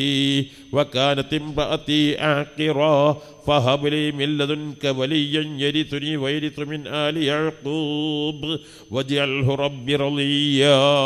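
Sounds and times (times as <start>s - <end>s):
man chanting melodically: 0.0s - 11.0s.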